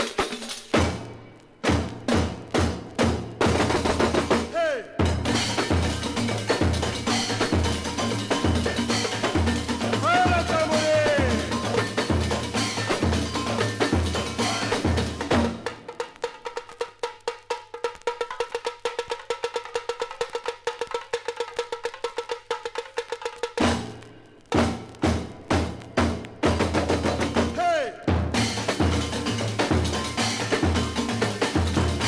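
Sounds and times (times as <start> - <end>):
samba percussion ensemble: 0.0 - 32.0.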